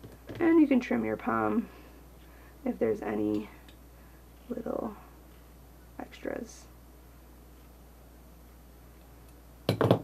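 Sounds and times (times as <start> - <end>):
hard objects clinking and knocking: 9.7 - 10.0.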